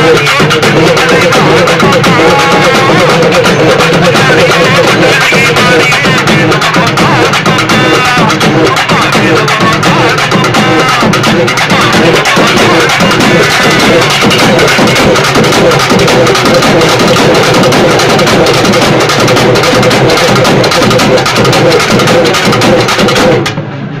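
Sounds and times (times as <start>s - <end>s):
stick-beaten barrel drums: 0.0s - 24.0s.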